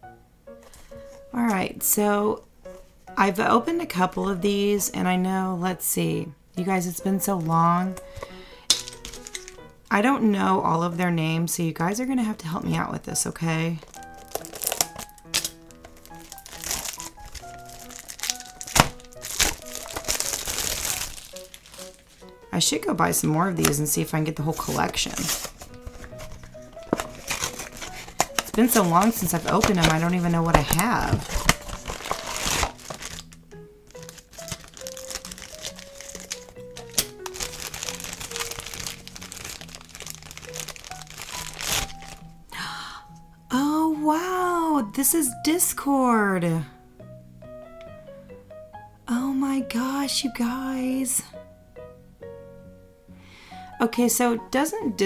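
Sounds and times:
background music: 0:00.0 - 0:55.0
simple background melody: 0:00.0 - 0:55.0
plastic shrink-wrap crinkling: 0:07.2 - 0:09.8, 0:13.7 - 0:22.4, 0:23.5 - 0:42.4
sharp plastic crackles: 0:07.4 - 0:09.8, 0:13.8 - 0:22.4, 0:24.6 - 0:42.3
scissors cutting foil: 0:08.7 - 0:09.6, 0:13.8 - 0:22.4, 0:24.6 - 0:42.2.

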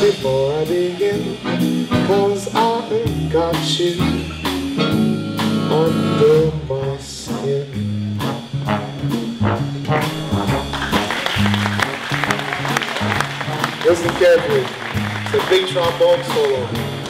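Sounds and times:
big band swing music: 0:00.0 - 0:17.0.

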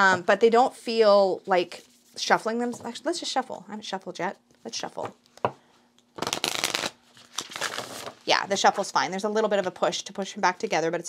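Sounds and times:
cards being riffle-shuffled: 0:06.2 - 0:08.2.

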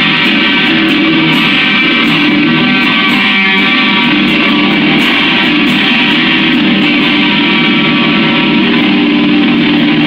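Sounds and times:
electric guitar strummed loudly: 0:00.0 - 0:10.0.

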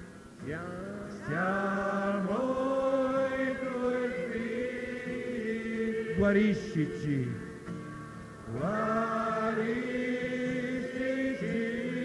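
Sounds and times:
voices singing hymn in unison: 0:00.0 - 0:12.0.

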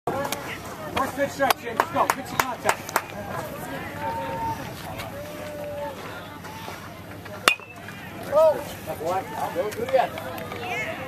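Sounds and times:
metal bat hitting ball: 0:07.4 - 0:07.8.

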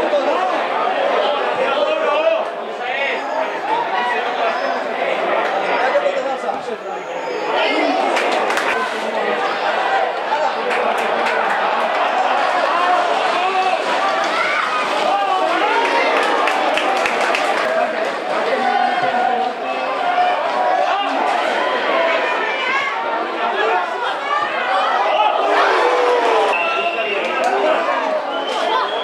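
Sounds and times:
crowd talking and shouting: 0:00.0 - 0:29.0.

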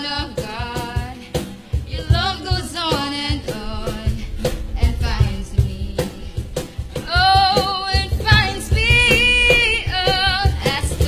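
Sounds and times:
band with steady drum beat: 0:00.0 - 0:11.0
woman singing: 0:00.0 - 0:11.0.

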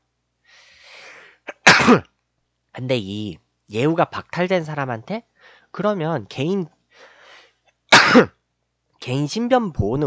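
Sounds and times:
breathy intake: 0:00.5 - 0:01.6, 0:06.9 - 0:07.5
man sneezing: 0:00.8 - 0:02.1, 0:07.9 - 0:08.3.

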